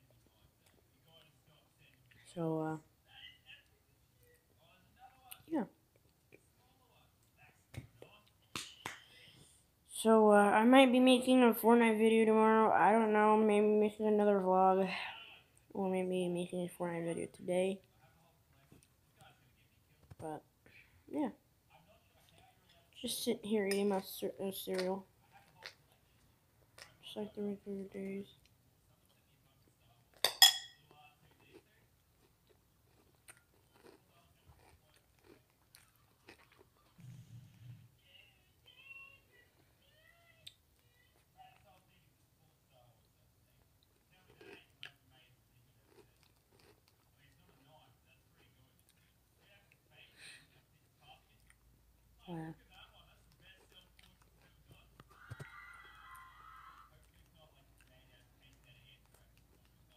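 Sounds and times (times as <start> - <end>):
cereal being chewed: 31.0 - 37.0, 45.6 - 47.7.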